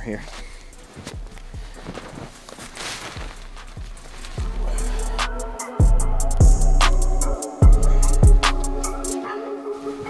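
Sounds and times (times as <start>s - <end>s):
background beat with kick drum: 0.0s - 2.4s, 3.1s - 9.2s
snow crunching under boots: 0.0s - 5.0s, 9.7s - 10.0s.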